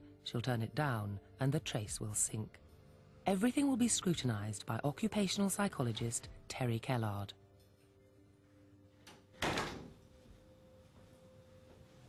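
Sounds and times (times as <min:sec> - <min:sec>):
door shutting with a thud: 0:09.4 - 0:10.0.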